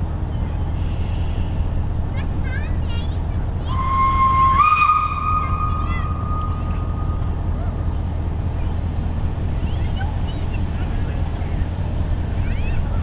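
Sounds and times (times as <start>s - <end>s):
steam locomotive whistle: 3.7s - 7.2s.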